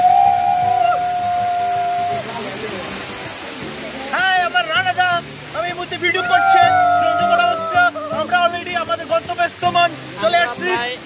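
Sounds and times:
long held high note: 0.0s - 2.4s
waterfall rushing into a pool: 0.0s - 11.0s.

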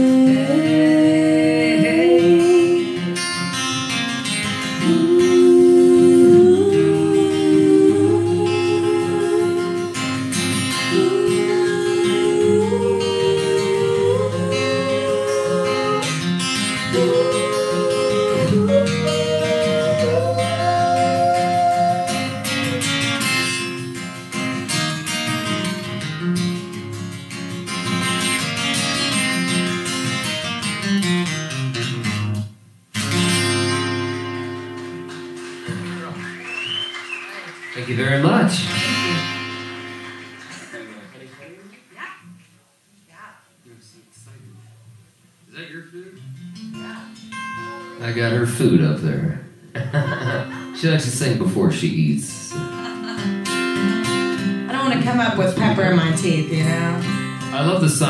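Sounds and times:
man and woman singing in harmony: 0.0s - 3.0s, 4.8s - 23.3s
acoustic guitar: 0.0s - 58.0s.

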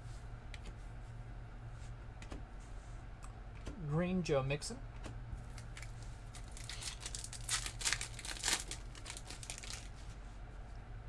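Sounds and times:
steady low hum: 0.0s - 11.0s
foil wrapper crinkling and tearing: 5.5s - 10.1s.

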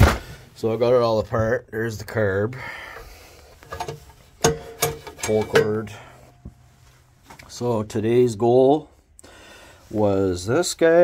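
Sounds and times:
metallic knocks with ring: 4.4s - 6.1s.

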